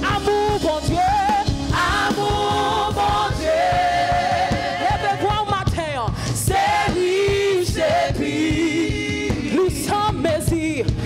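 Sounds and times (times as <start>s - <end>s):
accompaniment with steady beat: 0.0s - 11.0s
woman singing lead: 0.0s - 11.0s
backing singers: 1.4s - 10.5s.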